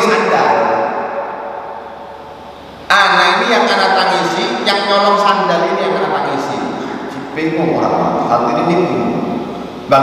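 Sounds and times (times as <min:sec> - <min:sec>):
man talking: 0:00.0 - 0:00.8, 0:02.9 - 0:09.3
voice echo in a hall: 0:00.0 - 0:10.0.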